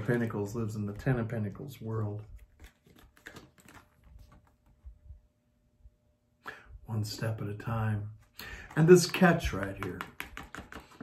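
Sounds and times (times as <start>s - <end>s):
person speaking: 0.0s - 2.4s, 6.8s - 11.0s
cards rustling and tapping: 2.3s - 4.8s, 8.2s - 11.0s.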